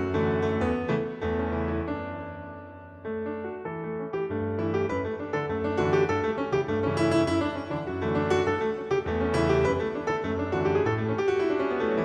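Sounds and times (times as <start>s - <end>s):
piano dance music: 0.0s - 12.0s.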